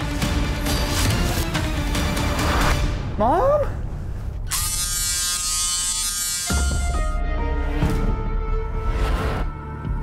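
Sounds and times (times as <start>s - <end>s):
small appliance motor buzzing: 4.5s - 7.2s.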